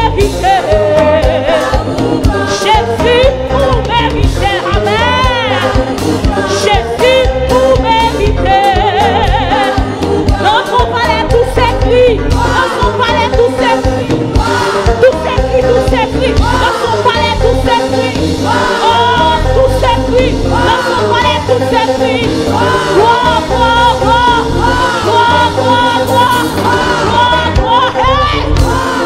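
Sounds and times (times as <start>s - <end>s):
band backing with low beat: 0.0s - 29.0s
sung vocals with vibrato: 0.0s - 29.0s.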